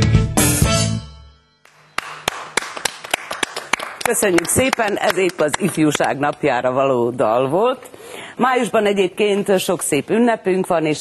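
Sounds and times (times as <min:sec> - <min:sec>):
people clapping: 0:01.6 - 0:06.5.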